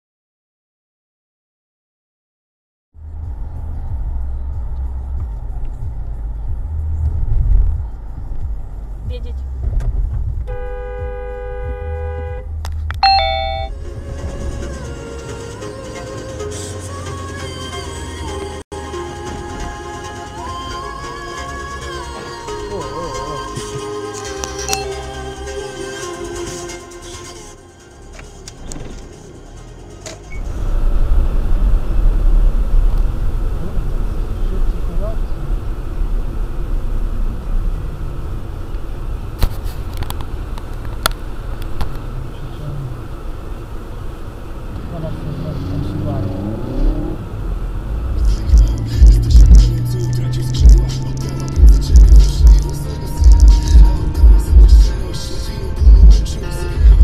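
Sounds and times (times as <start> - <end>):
car road and engine rumble: 2.9 - 57.0
music with heavy beat: 48.2 - 57.0.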